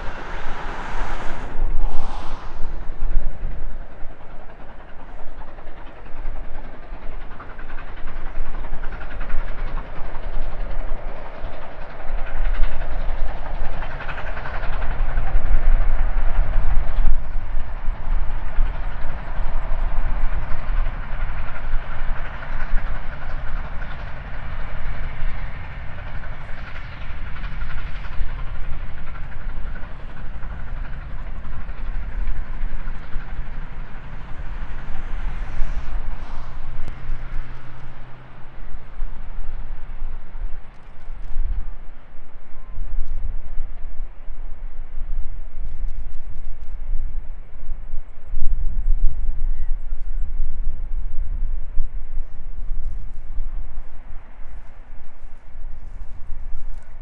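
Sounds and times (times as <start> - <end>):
steam locomotive working hard: 0.0 - 57.0
train wheels on rails: 0.0 - 57.0.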